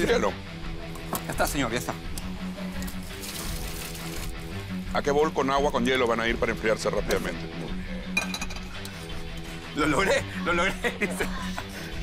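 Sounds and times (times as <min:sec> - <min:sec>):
background music with low note: 0:00.0 - 0:12.0.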